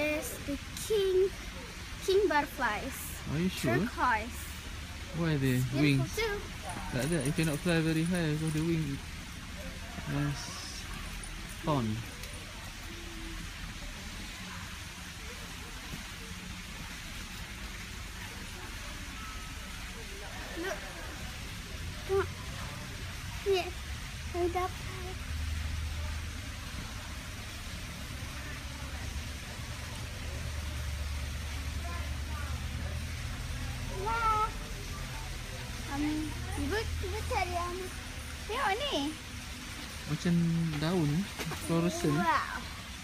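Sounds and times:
faint voices: 0.0s - 43.0s
outdoor background hiss: 0.0s - 43.0s.

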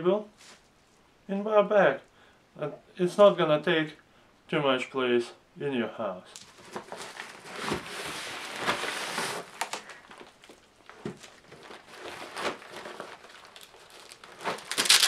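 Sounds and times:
bubble wrap crinkling: 6.3s - 15.0s
fabric rustling: 6.4s - 15.0s.

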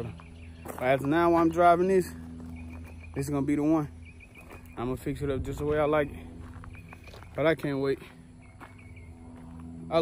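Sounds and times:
engine idling low hum: 0.0s - 10.0s.

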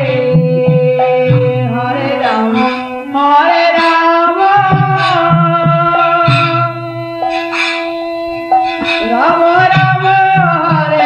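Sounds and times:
harmonium held tone: 0.0s - 11.0s
hand cymbals ringing: 0.4s - 10.1s.

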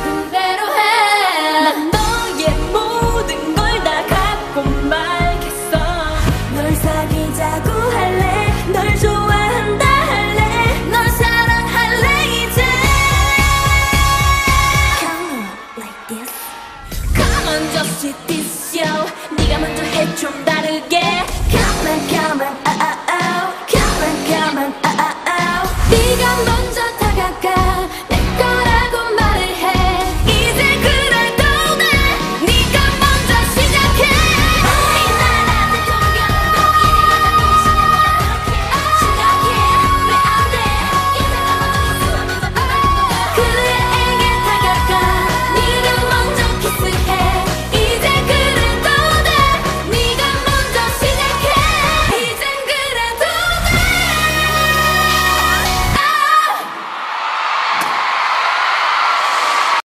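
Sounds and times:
dance-pop backing track: 0.0s - 56.8s
female group singing: 17.2s - 56.6s
electronic beat and bass: 25.8s - 52.1s.

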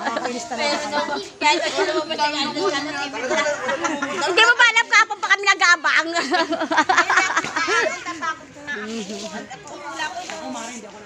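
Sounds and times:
loud chatter of voices: 0.0s - 11.0s.

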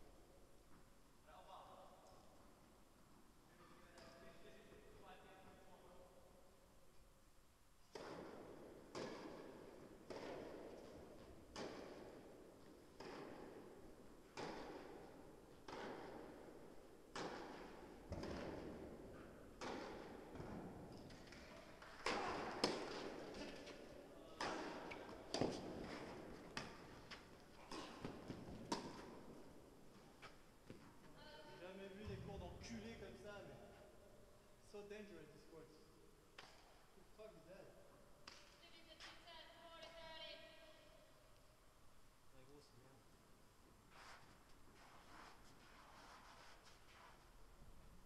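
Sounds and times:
tennis ball pock: 7.8s - 31.0s.

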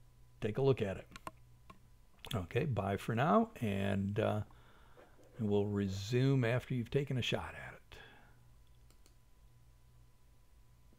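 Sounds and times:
faint steady hum: 0.0s - 10.9s
computer mouse clicks: 1.1s - 2.4s, 8.6s - 9.2s.

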